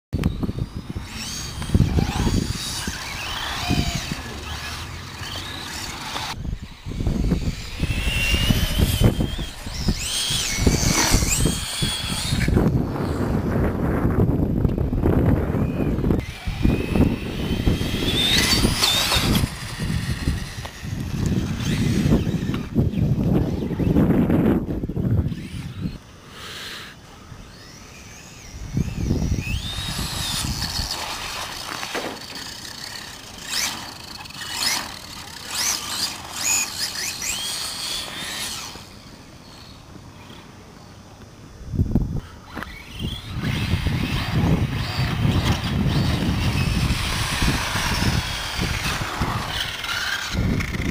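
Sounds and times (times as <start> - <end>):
radio-controlled car motors whining: 0.2 - 50.9.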